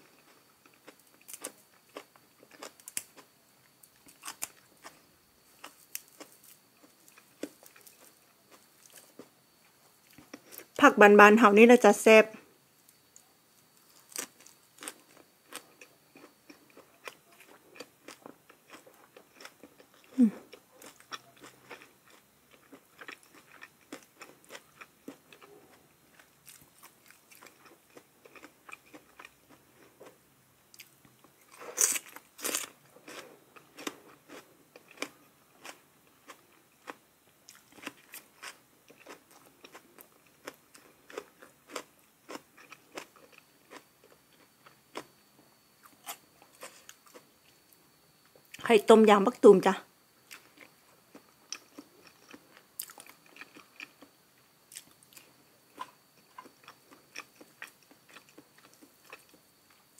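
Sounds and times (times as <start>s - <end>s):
person chewing crunchy vegetables: 0.0s - 10.8s, 13.6s - 48.6s, 50.2s - 59.9s.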